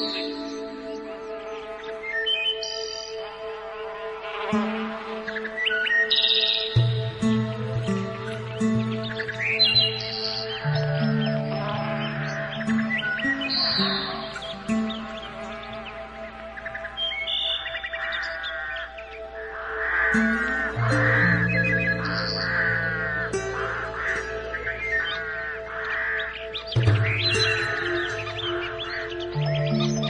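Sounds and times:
birdsong chirps and trills: 0.0s - 30.0s
slow relaxation music: 0.0s - 30.0s.

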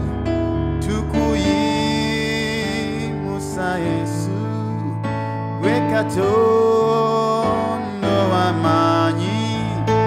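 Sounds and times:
synthesizer chords and bass: 0.0s - 1.5s
man singing gospel song: 0.0s - 10.0s.

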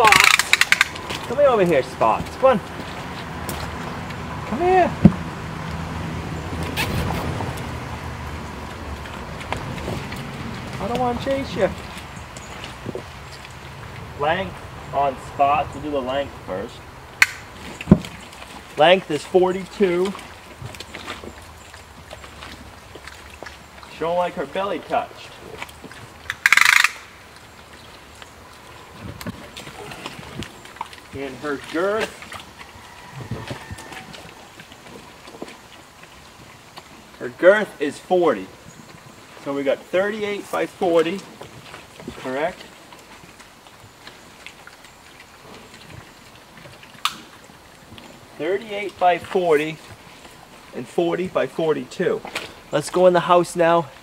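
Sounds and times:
clicks and knocks of eating: 0.0s - 4.4s, 19.5s - 24.4s, 25.5s - 37.2s
pigs eating grain: 0.0s - 26.5s, 27.1s - 54.0s.

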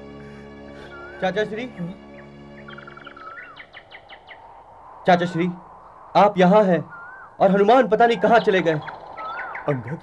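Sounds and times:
bird chirping and whistling: 0.8s - 1.4s, 2.6s - 4.5s, 6.9s - 7.4s, 8.1s - 9.8s.

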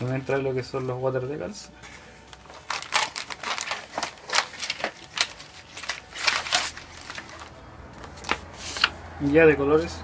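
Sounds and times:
paper and plastic rustling: 0.0s - 10.0s.

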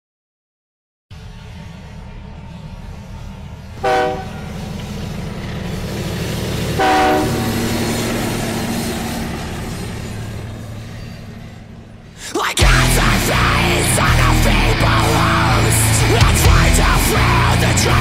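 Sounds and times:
freight train rumbling on rails: 1.1s - 18.0s
train horn blasts: 3.7s - 5.0s, 6.6s - 8.4s.

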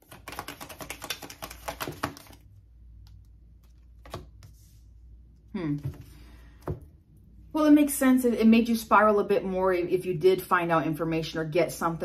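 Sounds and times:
tarot cards being shuffled: 0.0s - 4.8s.

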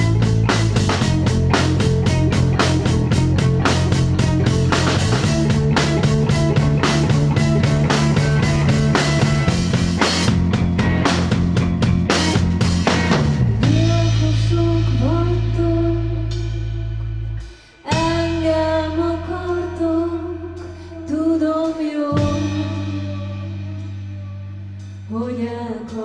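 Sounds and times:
sparse drums: 0.0s - 14.1s
deep bass notes: 0.0s - 26.0s
woman singing: 13.6s - 16.8s, 17.8s - 24.4s, 25.1s - 26.0s.

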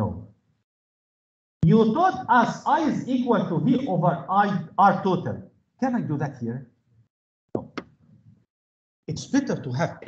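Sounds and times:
knock with sharp click: 7.6s - 8.0s.

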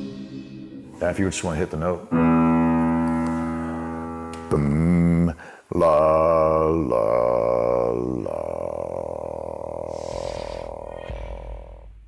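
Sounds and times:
choir holding chord: 0.0s - 1.4s
very deep bass note: 0.0s - 1.6s.

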